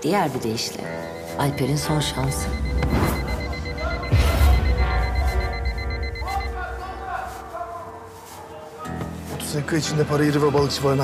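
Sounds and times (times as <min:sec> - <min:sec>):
dramatic background music: 0:00.0 - 0:07.1
phone pulsing high beep: 0:00.9 - 0:06.7.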